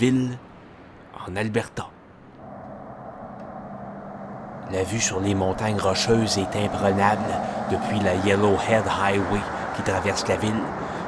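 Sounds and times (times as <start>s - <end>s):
vehicle engine and tyre noise: 2.3s - 11.0s.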